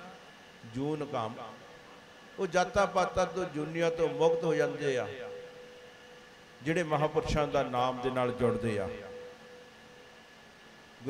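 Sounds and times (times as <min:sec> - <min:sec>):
faint sound system hum: 0:00.0 - 0:11.0
low background noise: 0:00.0 - 0:11.0.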